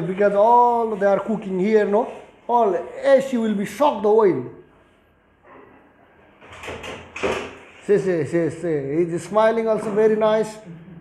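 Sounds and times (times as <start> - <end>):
stepladder rattling and scraping: 6.4 - 7.8.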